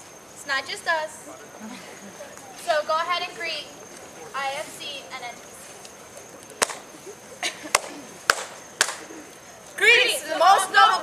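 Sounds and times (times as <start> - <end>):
hand claps: 6.6 - 6.9, 7.7 - 9.1.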